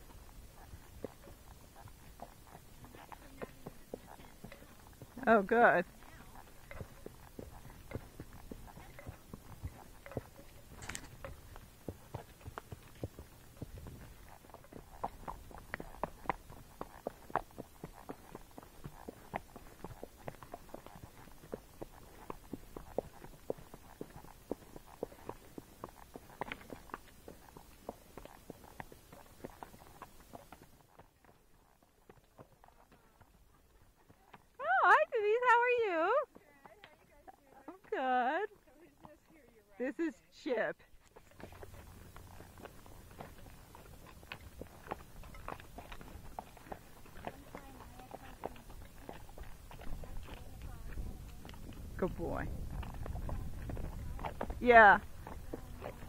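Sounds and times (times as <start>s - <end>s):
hoofbeats on dirt trail: 0.0s - 56.0s.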